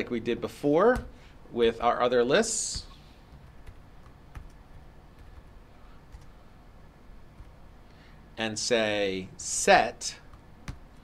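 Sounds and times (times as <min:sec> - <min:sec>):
computer keyboard typing: 0:02.8 - 0:06.4.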